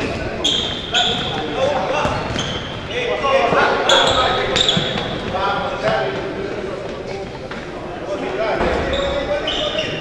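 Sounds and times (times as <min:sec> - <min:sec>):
players calling out: 0:00.0 - 0:10.0
shoes squeaking on floor: 0:00.0 - 0:10.0.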